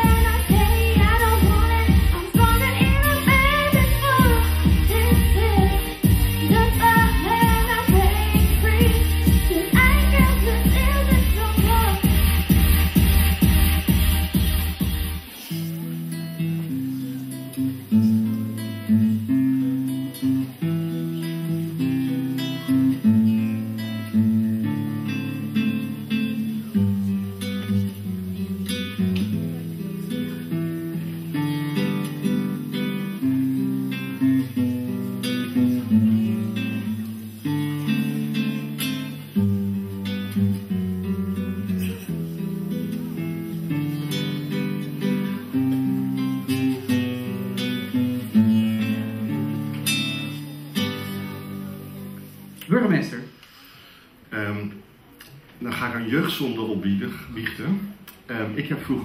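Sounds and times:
classical guitar playing: 0.0 - 52.8.

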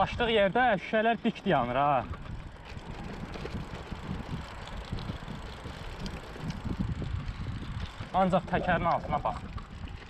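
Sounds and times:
bike knocking and rattling: 0.0 - 10.0
bike tyres rumbling on dirt: 0.0 - 10.0.

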